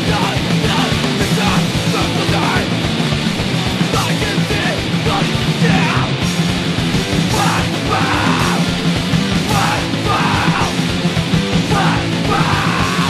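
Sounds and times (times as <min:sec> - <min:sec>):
punk rock band playing: 0:00.0 - 0:13.0
shouted punk vocals: 0:00.0 - 0:13.0.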